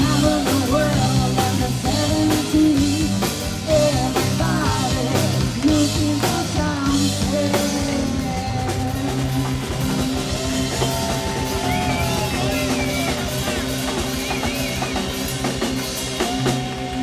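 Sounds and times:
drum kit: 0:00.0 - 0:17.0
electric guitar: 0:00.0 - 0:17.0
live rock band playing: 0:00.0 - 0:17.0.

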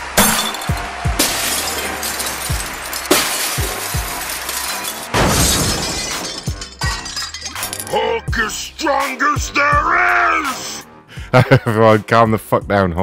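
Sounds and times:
glass shattering: 0:00.1 - 0:08.0.

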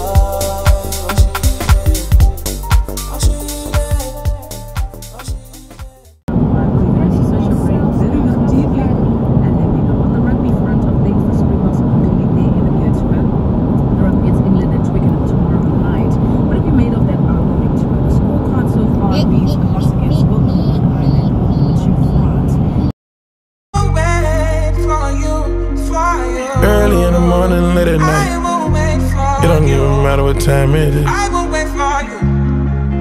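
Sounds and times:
car cabin road and engine rumble: 0:06.3 - 0:22.9.

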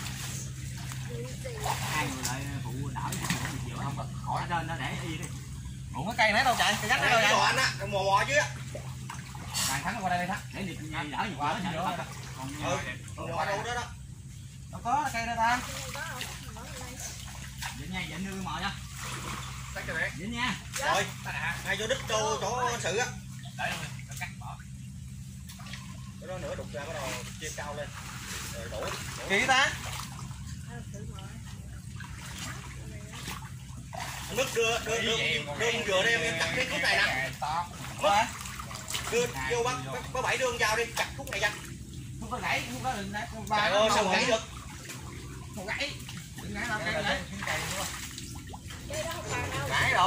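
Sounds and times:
water sloshing and splashing: 0:00.0 - 0:50.0.

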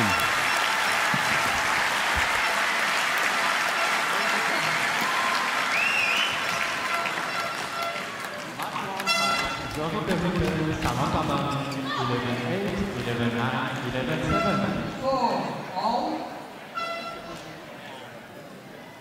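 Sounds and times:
crowd applauding: 0:00.0 - 0:11.0.

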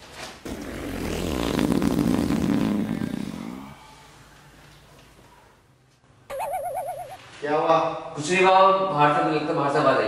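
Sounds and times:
long low fart: 0:00.4 - 0:03.8.

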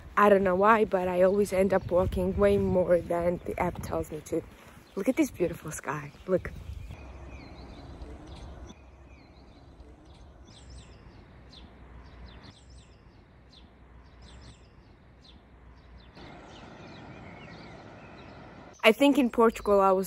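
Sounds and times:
small birds chirping: 0:00.0 - 0:20.0
low outdoor hum: 0:06.9 - 0:20.0.

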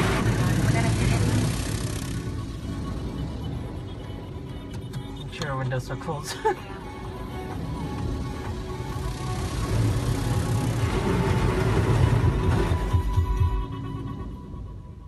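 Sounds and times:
water spray in car wash: 0:00.0 - 0:02.2, 0:08.4 - 0:12.8.

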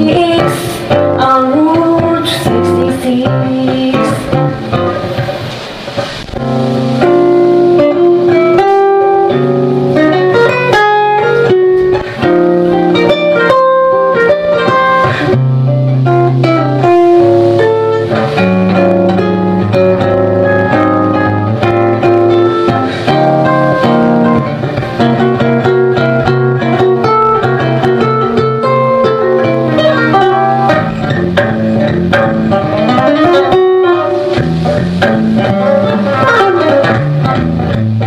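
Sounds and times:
guitar solo: 0:00.0 - 0:38.0.

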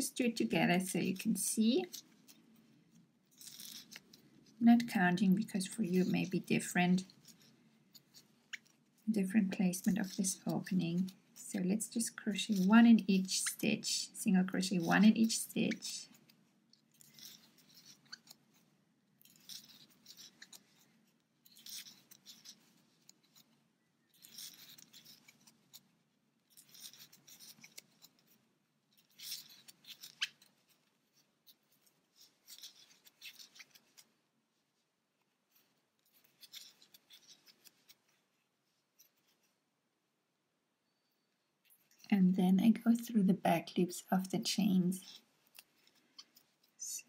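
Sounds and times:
crochet hook rustling yarn: 0:00.0 - 0:47.0.

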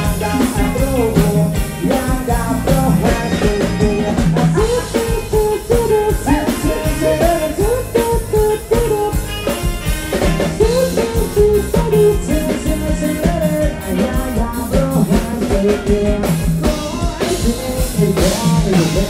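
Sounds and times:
man singing into a microphone: 0:00.0 - 0:09.6, 0:10.4 - 0:19.0
band playing dance song: 0:00.0 - 0:19.0.

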